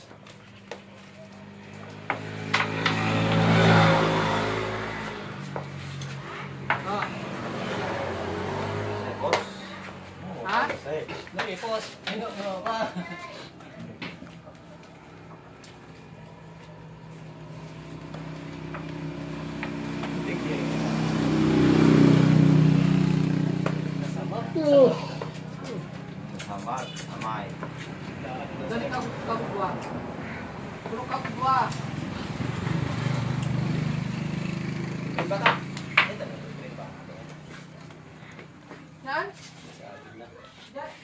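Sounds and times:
vehicle engine passing by: 0.0 - 41.0.

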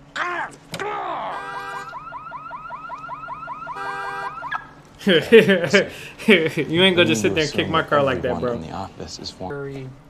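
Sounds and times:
car alarm warbling and whooping: 1.0 - 4.7.

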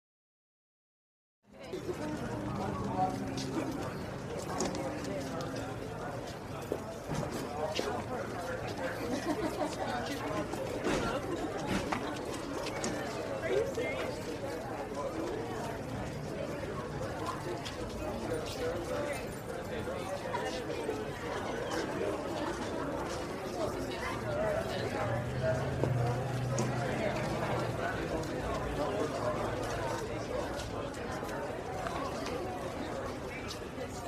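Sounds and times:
people talking: 1.5 - 34.0
indistinct voices chattering: 1.6 - 34.0.

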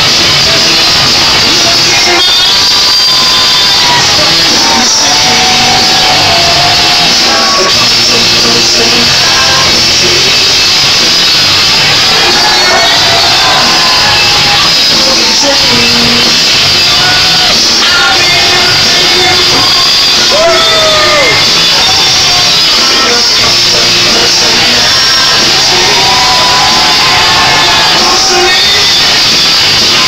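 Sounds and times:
crowd shouting: 0.0 - 30.0
rock music over loudspeakers: 0.0 - 30.0.

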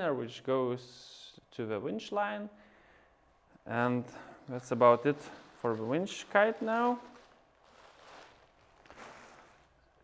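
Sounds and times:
faint nylon rustles: 4.2 - 10.0.

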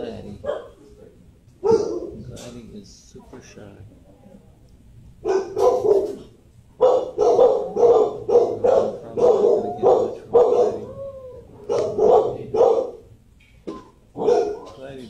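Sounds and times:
dog barking: 0.4 - 0.8, 1.6 - 2.2, 5.2 - 11.0, 11.6 - 13.1, 14.2 - 14.8.

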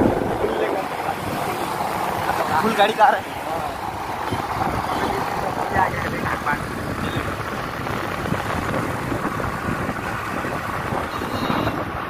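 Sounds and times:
road and wind rumble: 0.0 - 12.0.

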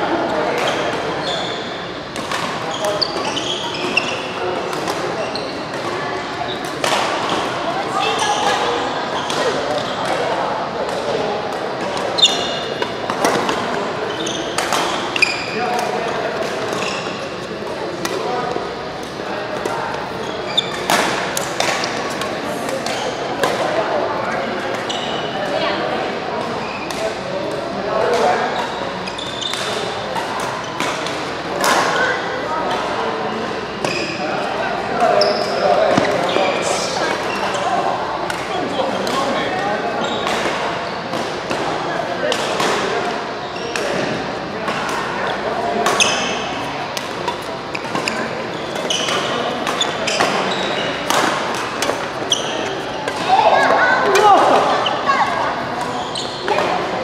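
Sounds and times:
indistinct voices: 0.0 - 57.0.

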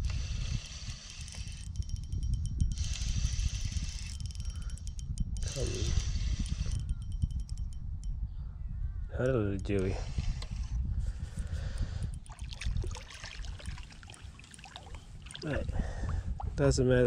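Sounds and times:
fishing reel whirring clicking: 0.0 - 8.2, 9.1 - 15.5
wind rumble on microphone: 0.0 - 17.0.

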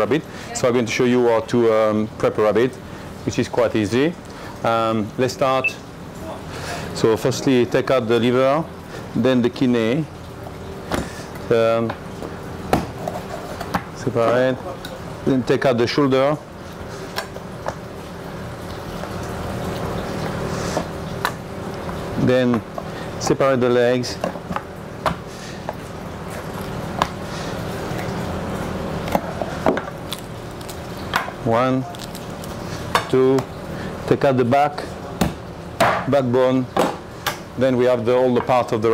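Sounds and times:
steady background hum: 0.0 - 38.9.

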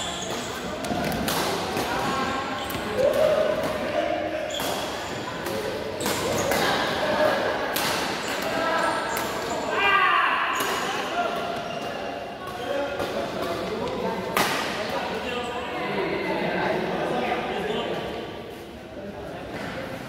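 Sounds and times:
rackets hitting shuttlecock: 0.2 - 3.9, 4.6 - 7.0, 13.0 - 15.0.

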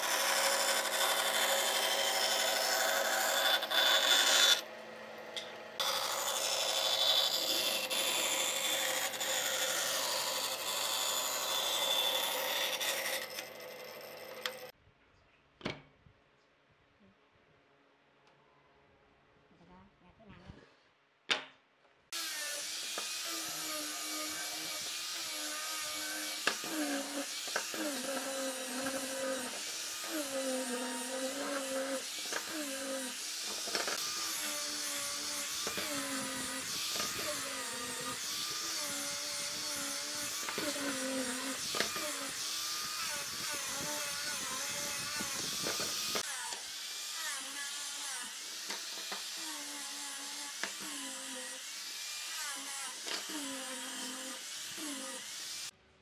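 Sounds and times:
angle grinder sanding wood: 0.0 - 4.7, 5.8 - 14.7, 22.1 - 55.8.

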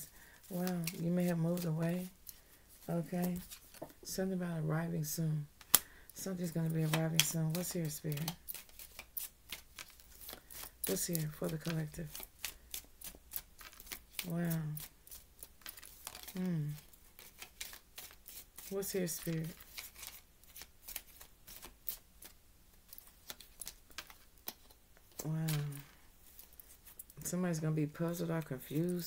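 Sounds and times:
cards being shuffled: 0.4 - 4.0, 6.4 - 27.2.

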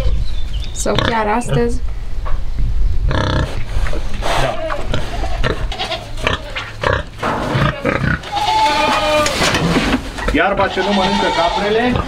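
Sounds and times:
pig grunting and snuffling: 3.1 - 12.0
goat bleating: 4.2 - 6.9, 7.5 - 9.4, 10.4 - 12.0.

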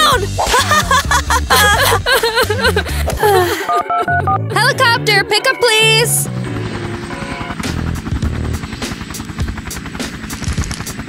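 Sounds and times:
helicopter rotor chopping: 0.0 - 3.4, 4.4 - 11.0
background music: 0.0 - 11.0.

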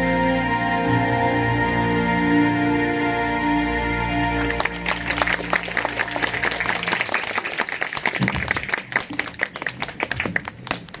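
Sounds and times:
audience applauding: 4.2 - 11.0.

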